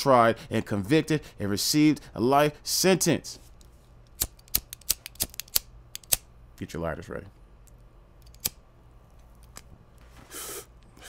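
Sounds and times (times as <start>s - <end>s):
short breathy hiss: 10.1s - 11.0s.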